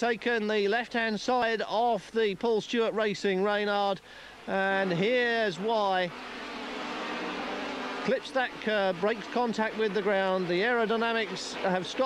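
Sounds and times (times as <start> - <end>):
racing car engines droning: 4.3 - 12.0.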